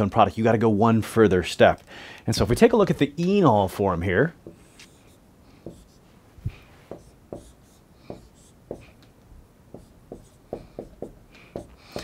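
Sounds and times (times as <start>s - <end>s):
marker drawing on a whiteboard: 3.7s - 9.0s, 9.7s - 12.0s.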